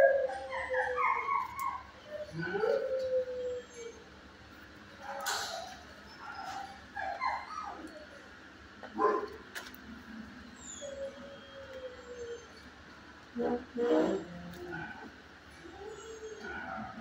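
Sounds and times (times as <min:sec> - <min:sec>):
dog whining: 0:00.0 - 0:04.2, 0:05.0 - 0:08.4, 0:10.4 - 0:17.0
dog yipping: 0:05.0 - 0:08.2
dog barking: 0:09.0 - 0:09.4.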